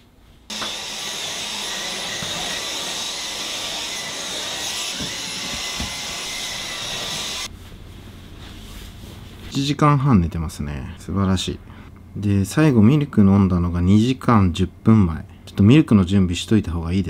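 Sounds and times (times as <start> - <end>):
vacuum cleaner whirring: 0.5 - 7.5.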